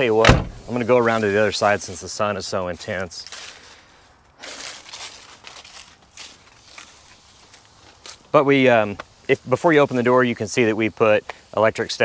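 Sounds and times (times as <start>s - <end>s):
footsteps on dry leaves: 0.8s - 10.1s.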